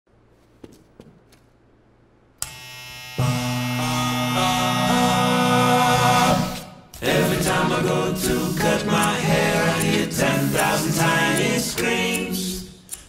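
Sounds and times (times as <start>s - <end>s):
footsteps on hard floor: 0.4s - 1.5s
a cappella barbershop singing: 3.9s - 12.9s.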